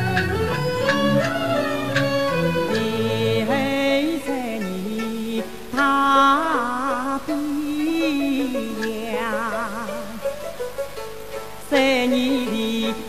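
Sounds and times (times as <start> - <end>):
opera aria singing: 0.0 - 10.8, 11.5 - 13.0.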